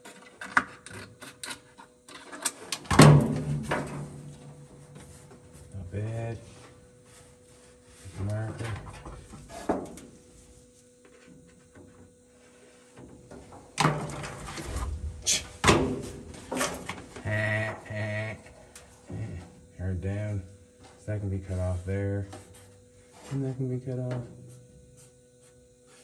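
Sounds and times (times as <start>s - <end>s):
faint steady hum: 0.0s - 26.0s
man making wordless vocal sounds: 17.2s - 18.5s.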